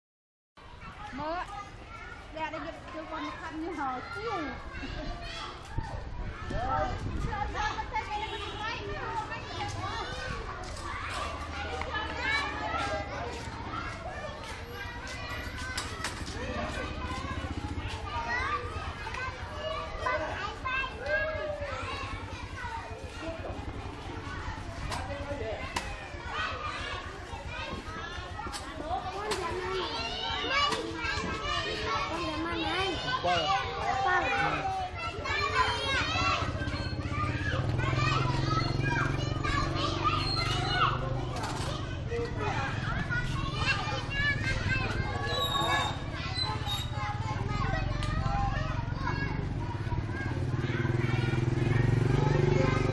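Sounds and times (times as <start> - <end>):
children shouting while playing: 0.6 - 52.9.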